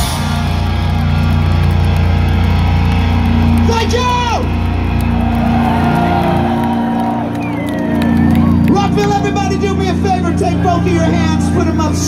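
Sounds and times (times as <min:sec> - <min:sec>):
rock band guitar drone: 0:00.0 - 0:12.0.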